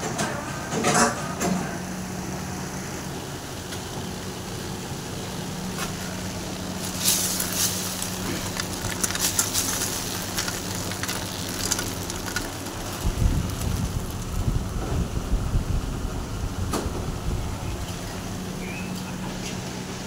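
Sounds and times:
machine humming: 1.6 - 20.0
rough low rumble: 6.1 - 18.6.

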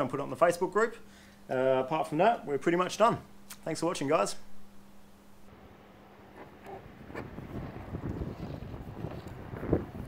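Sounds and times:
wind buffeting microphone: 6.4 - 10.0.

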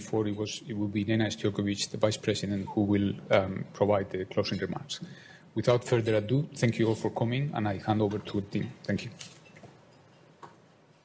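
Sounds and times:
person speaking: 0.0 - 9.4.

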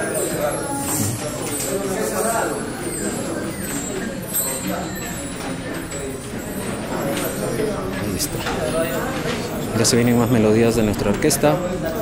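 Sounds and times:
hubbub of many people talking: 0.0 - 12.0.

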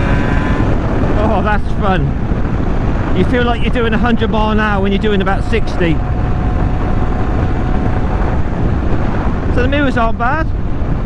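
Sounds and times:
motorcycle engine running: 0.0 - 11.0
wind noise on microphone: 0.0 - 11.0.

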